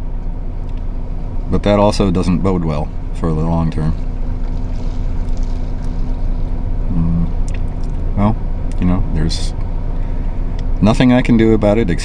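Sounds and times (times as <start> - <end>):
car engine hum inside cabin: 0.0 - 12.0.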